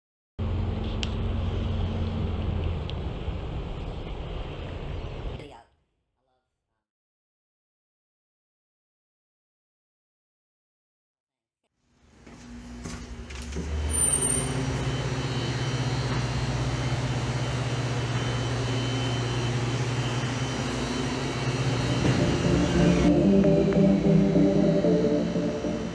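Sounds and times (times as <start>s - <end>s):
sustained music chords: 20.5s - 25.9s.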